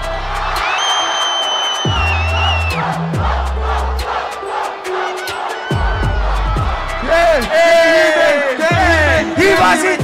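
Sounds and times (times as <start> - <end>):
crowd cheering and shouting: 0.0 - 10.0
hip-hop beat with bass and hi-hats: 0.0 - 10.0
long high whistle: 0.6 - 2.8.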